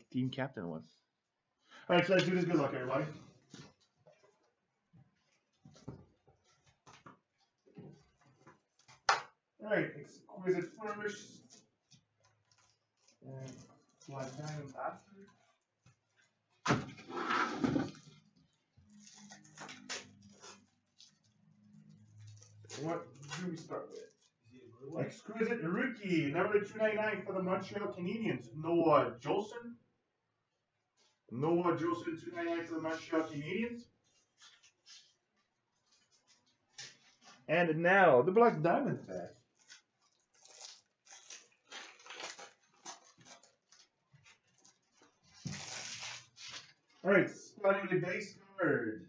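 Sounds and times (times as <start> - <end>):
foil wrapper tearing and crinkling: 39.4 - 47.0.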